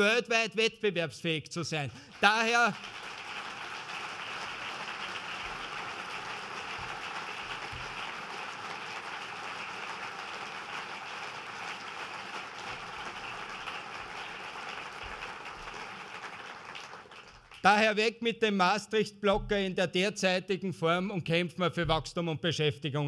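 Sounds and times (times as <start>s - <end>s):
audience applauding: 1.9s - 17.8s.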